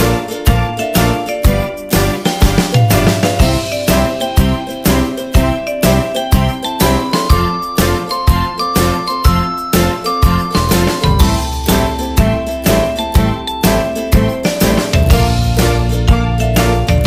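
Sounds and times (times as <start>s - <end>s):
chiming bell-like melody: 2.8s - 14.8s
steady beat: 9.7s - 16.0s.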